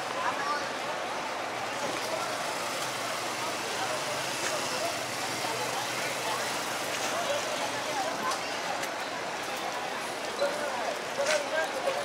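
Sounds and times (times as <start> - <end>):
motor traffic hum: 0.0 - 10.4
people's voices: 0.0 - 12.0.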